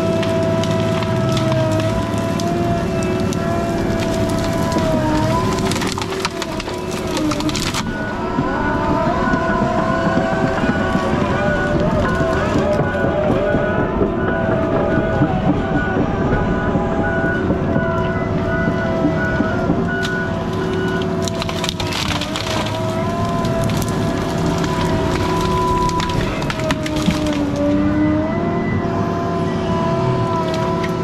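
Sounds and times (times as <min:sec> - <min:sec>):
diesel engine and hydraulics: 0:00.0 - 0:31.0.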